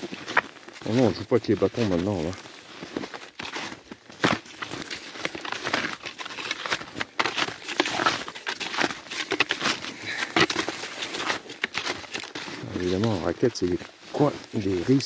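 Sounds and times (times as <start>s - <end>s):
snowshoe footsteps crunching snow: 0.0s - 15.0s.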